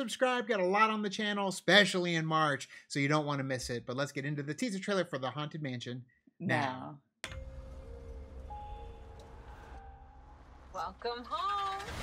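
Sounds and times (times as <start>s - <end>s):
slow film trailer music: 7.2s - 12.0s.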